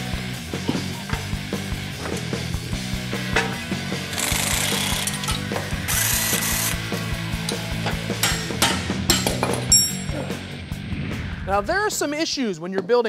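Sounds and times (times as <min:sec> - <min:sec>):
power tool spinning out bolts: 0:04.1 - 0:06.8.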